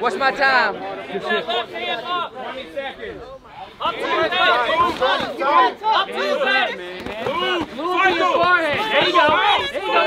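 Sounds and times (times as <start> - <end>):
crowd shouting and yelling: 0.0 - 10.0.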